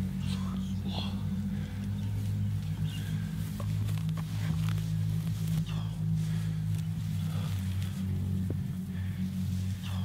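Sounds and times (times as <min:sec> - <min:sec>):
breathy whispers: 0:00.0 - 0:10.0
low steady drone: 0:00.0 - 0:10.0.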